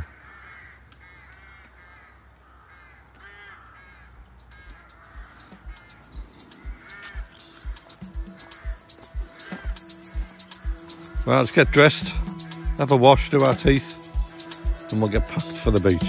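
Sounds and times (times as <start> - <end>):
crows cawing: 0.0 - 16.0
music with steady beat: 4.4 - 16.0.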